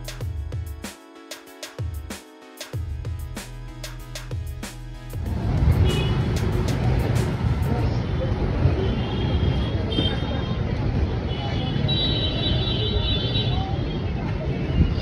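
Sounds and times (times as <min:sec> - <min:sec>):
background music with a beat: 0:00.0 - 0:07.8
traffic: 0:05.1 - 0:15.0.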